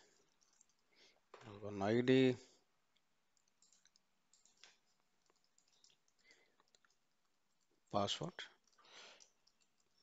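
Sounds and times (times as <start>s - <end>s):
keyboard and mouse clicks: 3.0s - 10.0s.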